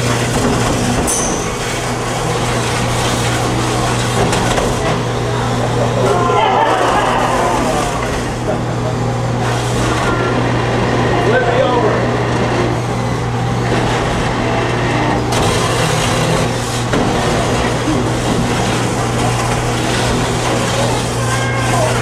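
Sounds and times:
robot motors humming: 0:00.0 - 0:22.0
people talking: 0:11.1 - 0:12.1, 0:20.8 - 0:22.0.

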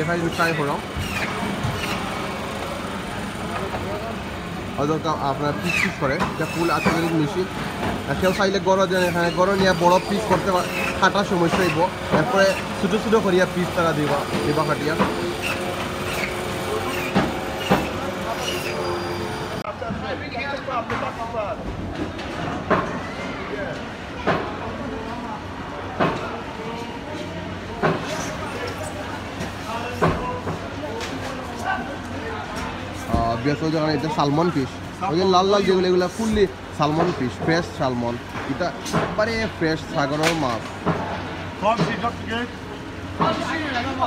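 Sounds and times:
electric band saw running: 0:00.0 - 0:04.6, 0:05.6 - 0:19.6
market crowd chatter: 0:00.0 - 0:44.0.

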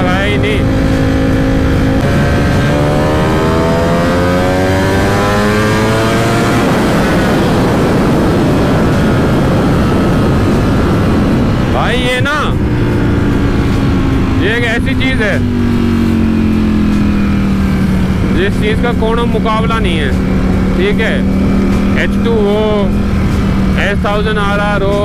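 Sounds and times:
loud wind rush: 0:00.0 - 0:25.0
motorcycle engine accelerating: 0:00.0 - 0:25.0.

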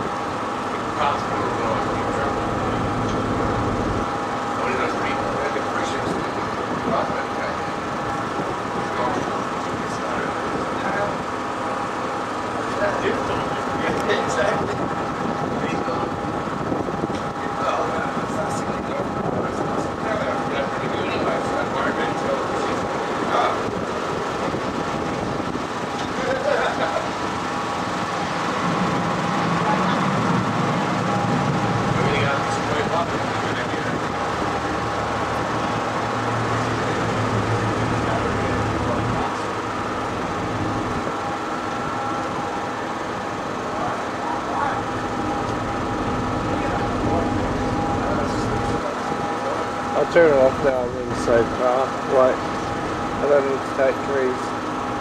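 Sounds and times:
boat engine droning: 0:00.0 - 0:55.0
indistinct voices: 0:25.8 - 0:55.0.

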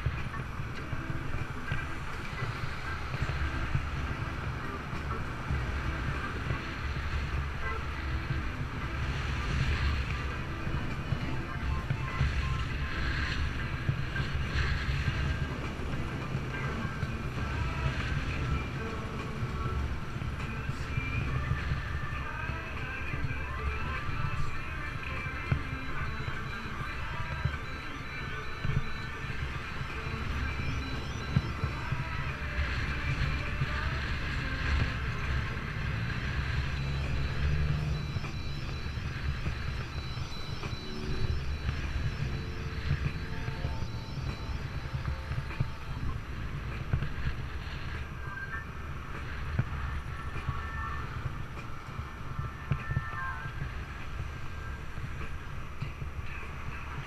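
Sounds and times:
wind rush and road rumble: 0:00.0 - 0:57.0.

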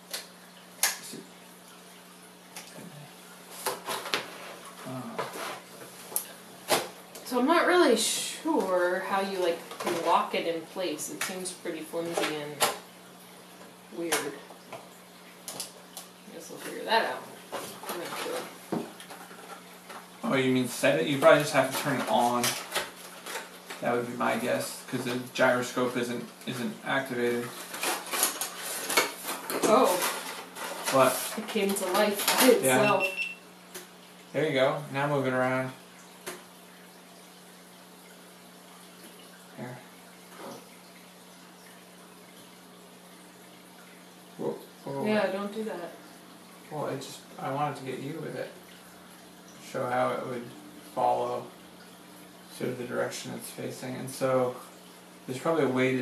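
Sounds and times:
faint steady hum: 0:00.0 - 0:56.0
person speaking a word: 0:32.5 - 0:33.0.

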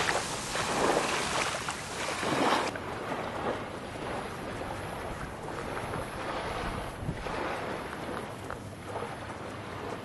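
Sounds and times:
ocean surf: 0:00.0 - 0:10.0
wind on microphone: 0:00.0 - 0:10.0.

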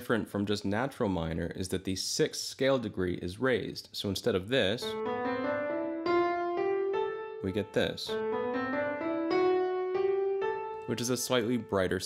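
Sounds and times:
keyboard playing piano scale: 0:04.8 - 0:12.0.

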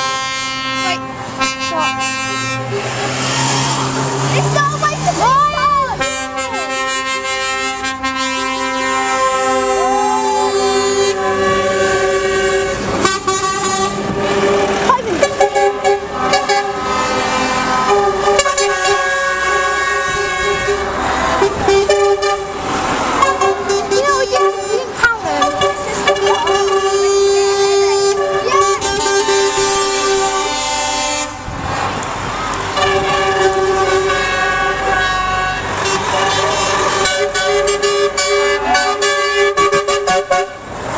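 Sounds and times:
truck air horns: 0:00.0 - 0:40.9.

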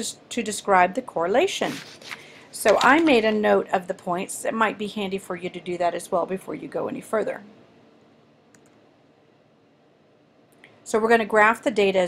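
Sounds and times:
mouse click: 0:08.5 - 0:08.8.

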